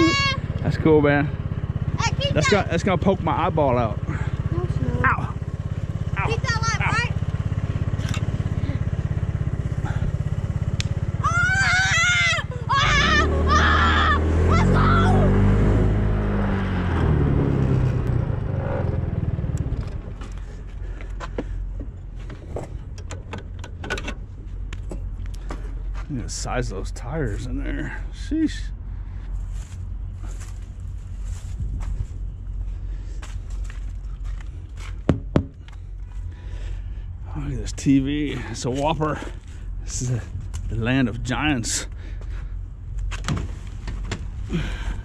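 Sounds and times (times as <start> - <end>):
small motorbike engine: 0.0 - 24.2.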